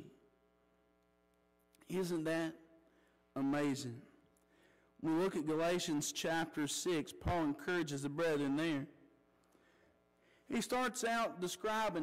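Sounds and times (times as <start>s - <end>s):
electrical mains hum: 0.0s - 12.0s
man speaking: 1.8s - 4.2s, 5.0s - 9.0s, 10.5s - 12.0s.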